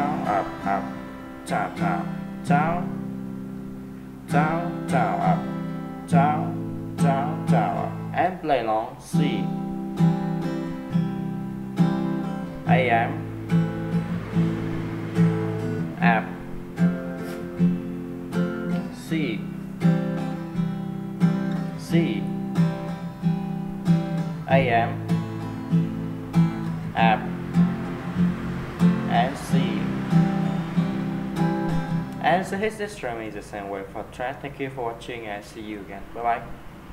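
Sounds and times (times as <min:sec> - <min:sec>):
acoustic guitar strumming: 0:00.0 - 0:35.2.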